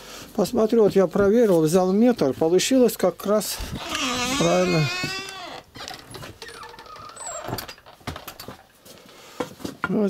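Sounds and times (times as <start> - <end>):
faint squeak: 6.4 - 7.8.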